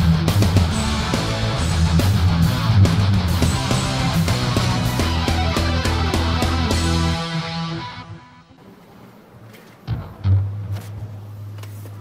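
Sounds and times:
backing drums and bass: 0.0 - 7.4
electric guitars playing heavy rock: 0.0 - 8.5.

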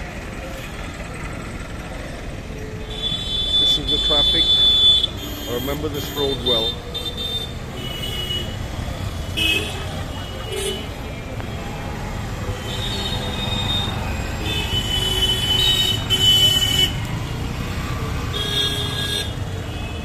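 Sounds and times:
street traffic engines: 0.0 - 20.0
vehicle horns honking: 2.8 - 11.1, 12.4 - 17.2, 18.2 - 20.0.

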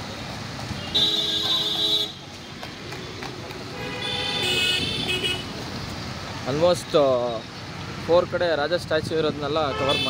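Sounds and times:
passing cars: 0.0 - 10.0
vehicle horn honking: 3.8 - 5.5, 9.7 - 10.0.

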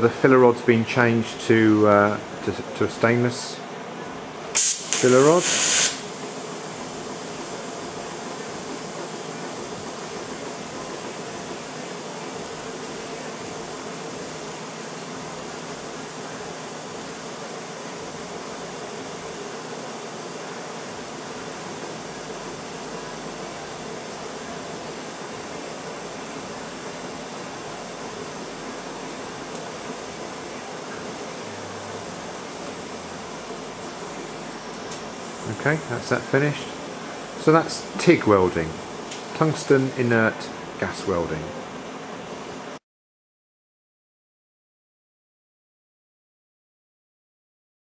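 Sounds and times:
welding arc hissing: 4.5 - 9.0, 22.4 - 40.2.

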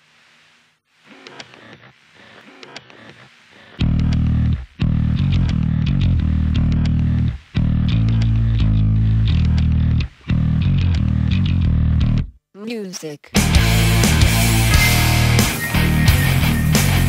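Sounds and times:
heavy metal band playing: 13.4 - 17.0.

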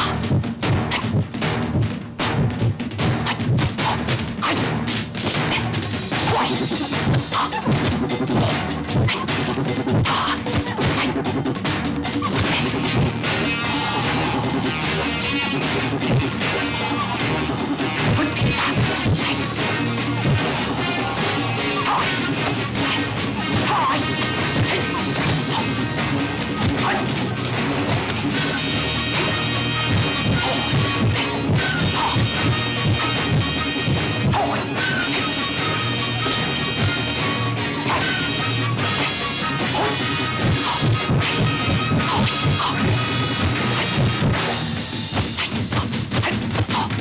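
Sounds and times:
film soundtrack music: 0.0 - 47.0.

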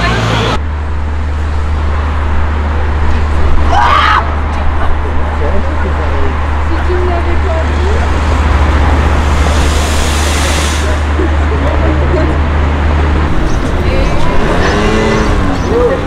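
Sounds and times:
passers-by talking: 0.0 - 0.6, 2.5 - 16.0
rushing swell: 6.8 - 15.7.

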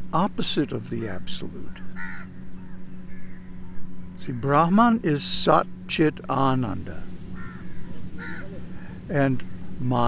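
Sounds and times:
crows cawing: 1.8 - 4.6, 7.2 - 9.8.

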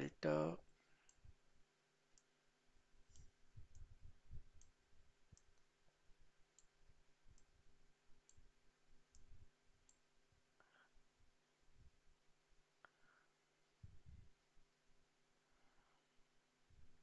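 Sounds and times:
computer mouse clicks: 0.6 - 1.3, 2.1 - 2.3, 3.1 - 5.7, 6.5 - 7.5, 9.1 - 10.0.

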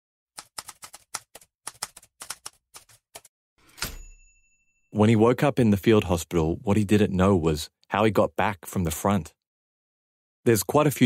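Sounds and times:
typewriter bell ding: 3.6 - 4.9.

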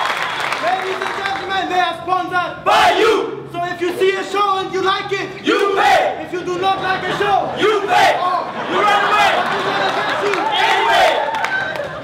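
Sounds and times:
crowd noise in a hall: 0.0 - 12.0
men shouting: 5.4 - 9.5, 10.2 - 11.3.

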